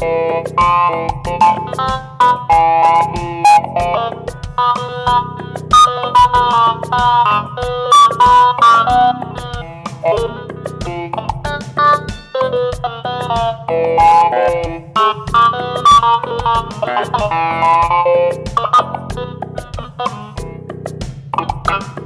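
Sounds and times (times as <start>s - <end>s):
drum machine beat: 0.0s - 22.0s
synthesizer plucked notes: 0.0s - 22.0s.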